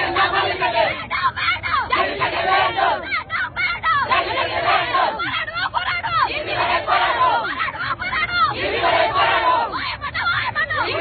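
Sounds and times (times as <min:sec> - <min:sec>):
crowd shouting: 0:00.0 - 0:11.0
woman shouting: 0:00.8 - 0:06.5, 0:07.2 - 0:08.7, 0:09.4 - 0:11.0.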